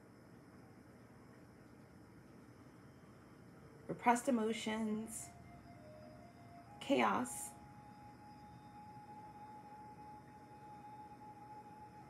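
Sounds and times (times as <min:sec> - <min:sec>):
faint steady tone music: 0:00.0 - 0:12.0.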